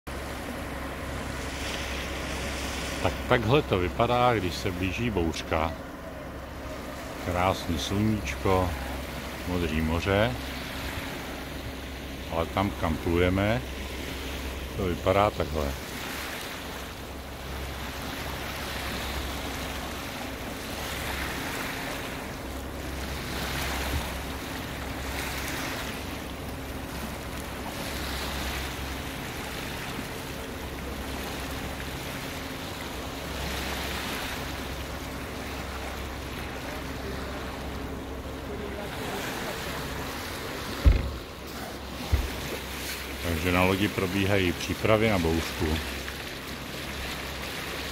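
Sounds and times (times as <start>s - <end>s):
wind: 0.0s - 47.9s
sea water washing past a boat: 0.1s - 47.9s
steady low hum: 0.1s - 47.9s
sharp knock: 40.8s - 41.2s.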